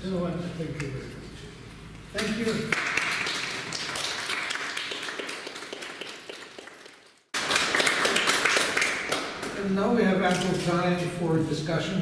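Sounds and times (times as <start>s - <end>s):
small audience applauding: 2.2s - 9.6s.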